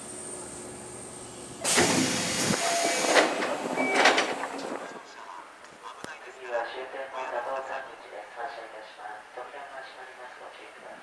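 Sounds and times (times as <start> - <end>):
low steady train sound: 0.0 - 11.0
train doors hissing open: 1.5 - 4.9.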